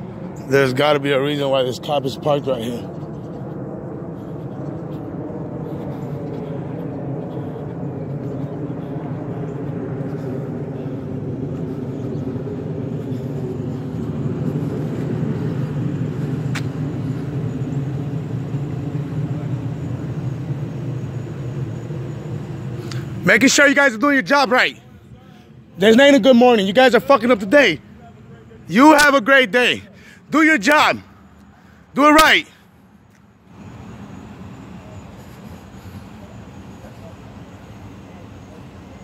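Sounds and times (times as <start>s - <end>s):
vehicle engine hum: 0.0s - 39.0s.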